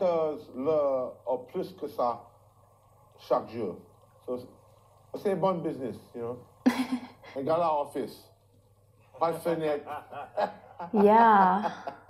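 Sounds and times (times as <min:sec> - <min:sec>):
person chuckling: 0:06.7 - 0:07.3, 0:10.0 - 0:12.0
person speaking: 0:10.9 - 0:11.9.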